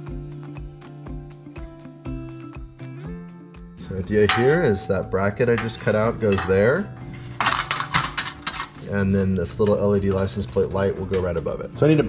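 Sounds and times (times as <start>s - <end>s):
license plate clinking against metal bracket: 4.2s - 8.8s.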